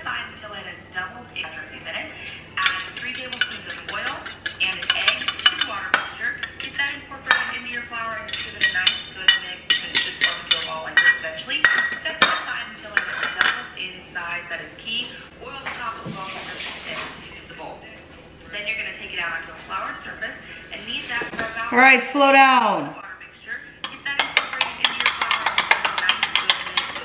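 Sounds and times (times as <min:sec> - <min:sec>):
metal spoon scraping metal bowl: 0:02.2 - 0:11.4.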